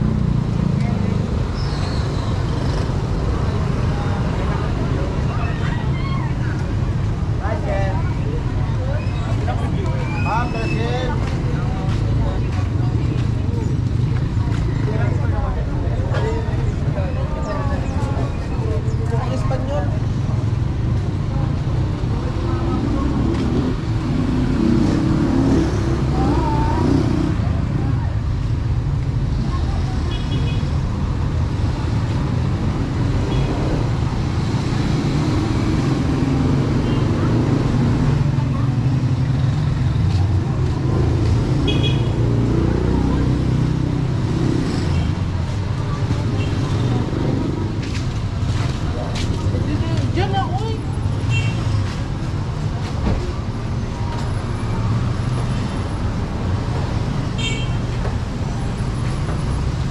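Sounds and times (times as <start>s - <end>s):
passers-by talking: 0.0s - 59.9s
traffic rumble: 0.0s - 59.9s.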